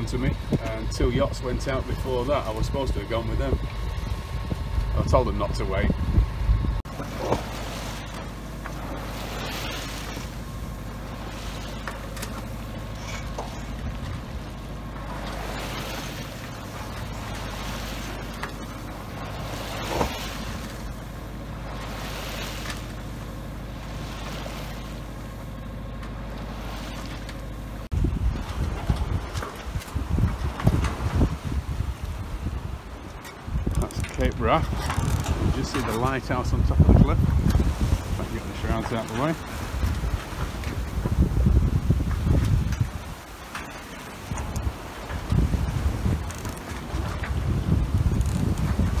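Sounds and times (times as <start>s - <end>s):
wind buffeting microphone: 0.0s - 11.8s, 27.9s - 49.0s
boat engine running: 0.0s - 49.0s
water rushing along hull: 0.0s - 49.0s
water splash: 6.8s - 25.3s, 26.4s - 27.5s.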